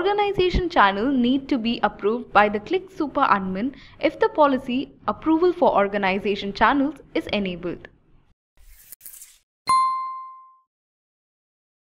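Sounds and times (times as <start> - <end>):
bright bell-like ding: 9.7 - 10.7.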